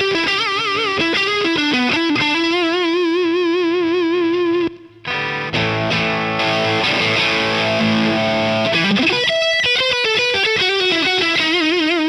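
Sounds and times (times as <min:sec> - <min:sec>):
overdriven electric guitar note: 0:04.2 - 0:10.1.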